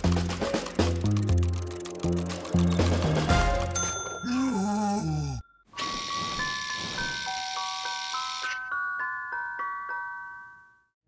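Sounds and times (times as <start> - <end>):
ice cream van chime tune: 3.7 - 4.6, 5.5 - 11.0.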